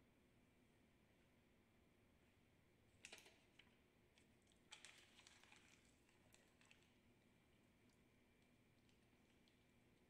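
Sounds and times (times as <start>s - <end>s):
paper crackling and rustling: 4.7s - 6.9s.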